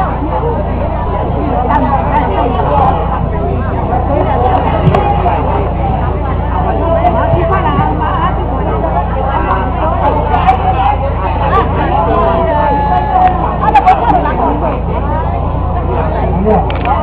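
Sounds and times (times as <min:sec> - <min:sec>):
crowd babble: 0:00.0 - 0:17.0
steady low hum: 0:00.0 - 0:17.0.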